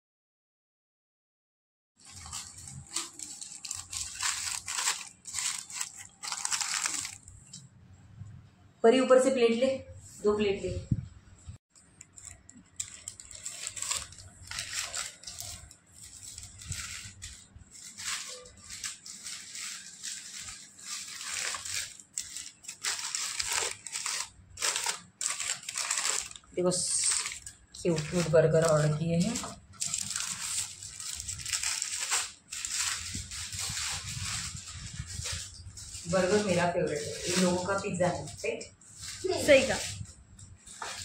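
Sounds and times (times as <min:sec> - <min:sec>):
paper wrapper crinkling: 0:02.0 - 0:07.7, 0:11.7 - 0:41.0.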